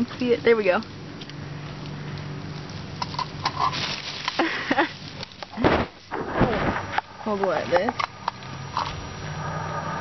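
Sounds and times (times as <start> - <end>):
bush leaves rustling and crackling: 0.2 - 7.9.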